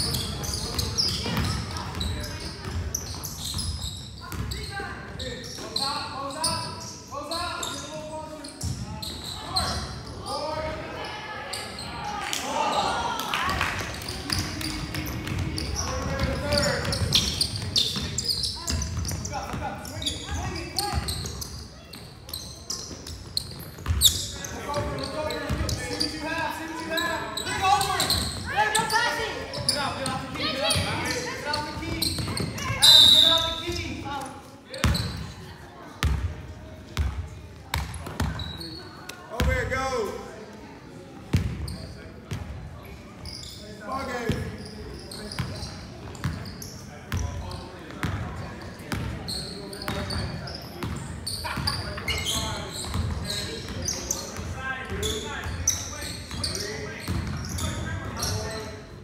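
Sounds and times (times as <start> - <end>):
voices and shouts: 9.0 - 17.2, 24.4 - 34.8.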